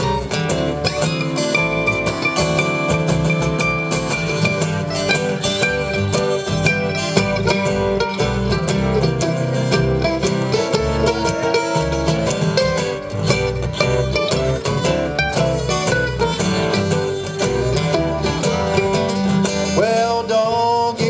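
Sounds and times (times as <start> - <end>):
picked mandolin: 0.0 - 21.0
strummed acoustic guitars: 0.0 - 21.0.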